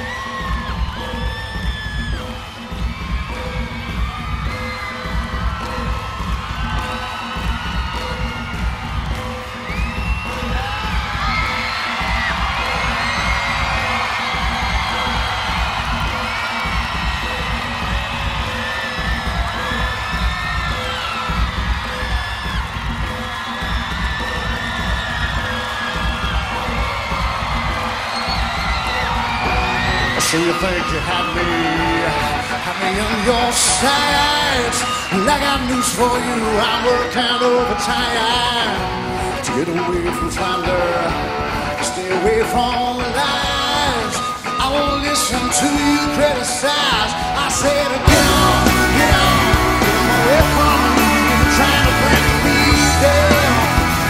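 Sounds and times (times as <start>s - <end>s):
crowd screaming and whooping: 0.0s - 54.0s
live rock music: 0.0s - 54.0s.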